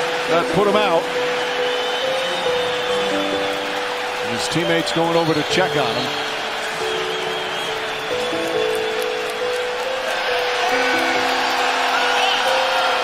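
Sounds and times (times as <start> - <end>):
arena crowd cheering: 0.0 - 13.0
slow background music: 0.0 - 13.0.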